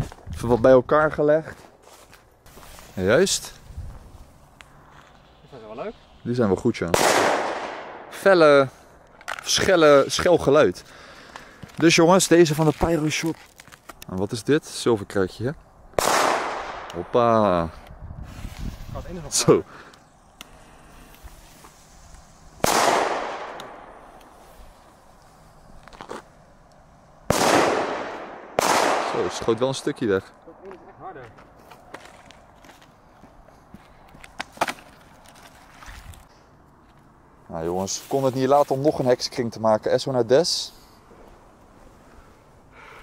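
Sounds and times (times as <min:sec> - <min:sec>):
firecracker bang with echo: 0:06.9 - 0:08.2, 0:22.6 - 0:24.0, 0:27.3 - 0:29.5.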